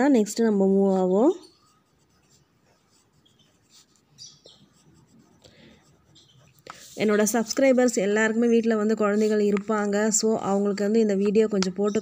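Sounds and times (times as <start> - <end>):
pen scratching on paper: 0.0 - 12.0.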